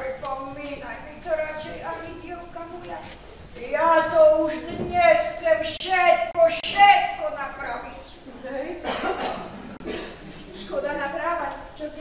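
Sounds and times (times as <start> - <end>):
person coughing: 8.8 - 10.5.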